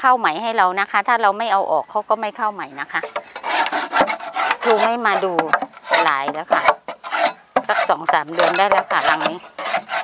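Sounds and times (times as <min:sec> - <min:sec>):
rasping scrapes on wood: 0:03.0 - 0:10.0.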